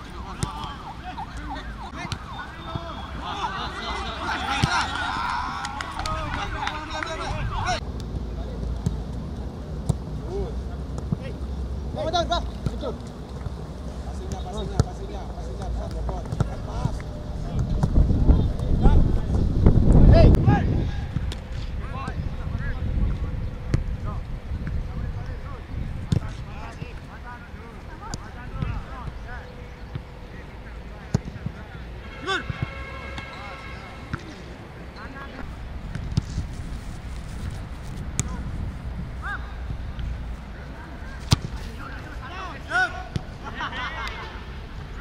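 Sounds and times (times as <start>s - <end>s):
distant voices shouting: 0.0s - 7.8s
wind noise on microphone: 17.0s - 27.1s, 35.5s - 40.6s
footballs being kicked: 41.2s - 41.7s.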